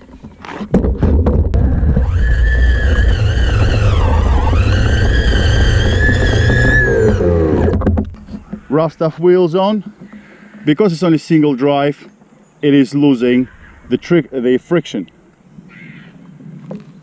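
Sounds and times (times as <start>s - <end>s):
wheels rumbling over grass: 0.0s - 11.6s
electric motor whining: 1.5s - 8.2s.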